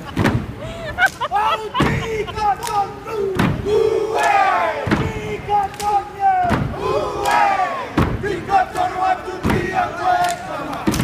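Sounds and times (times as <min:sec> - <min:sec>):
men chanting and shouting: 0:01.2 - 0:11.0
heavy thumps: 0:03.4 - 0:03.8, 0:04.8 - 0:05.4, 0:06.4 - 0:06.8, 0:07.9 - 0:08.5.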